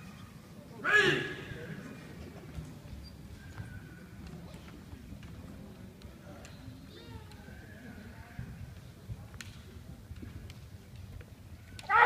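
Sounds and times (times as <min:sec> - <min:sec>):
loud pitched shout: 0:00.8 - 0:01.6.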